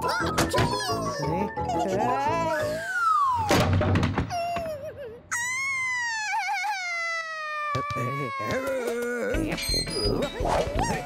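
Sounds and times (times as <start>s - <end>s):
cartoon character wailing: 4.4s - 9.4s.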